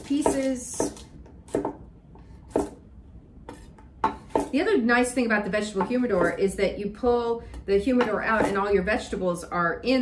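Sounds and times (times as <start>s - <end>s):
knife chopping on wooden board: 0.0s - 2.8s, 3.4s - 4.6s, 5.7s - 6.5s, 7.9s - 8.7s.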